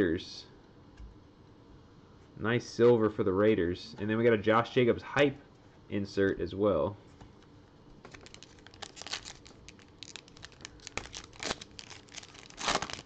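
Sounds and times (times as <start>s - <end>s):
plastic wrapper crinkling and tearing: 8.0s - 13.0s.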